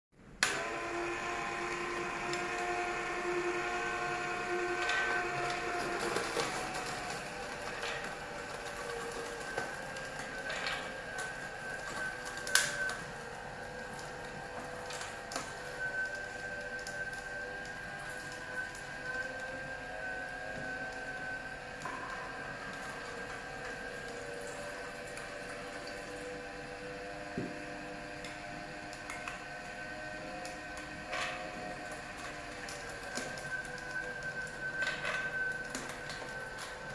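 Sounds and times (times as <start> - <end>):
juicer motor humming: 0.4 - 36.9.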